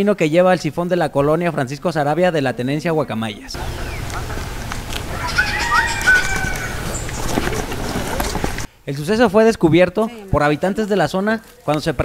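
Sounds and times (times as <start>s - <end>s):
birds whistling: 3.4s - 8.7s
low outdoor rumble: 3.4s - 8.7s.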